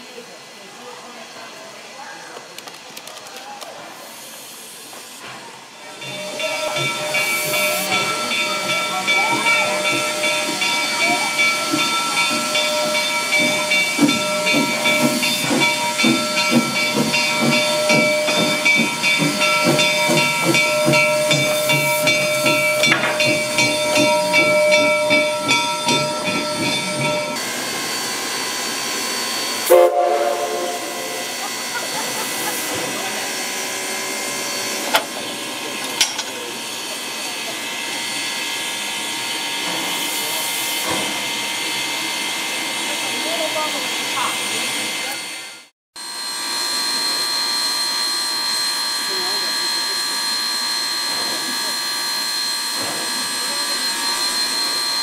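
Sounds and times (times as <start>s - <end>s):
steam hissing: 3.7s - 45.5s, 46.2s - 55.0s
sustained high tones: 5.8s - 27.4s, 29.7s - 32.0s
rhythmic low pulsing: 6.0s - 27.4s.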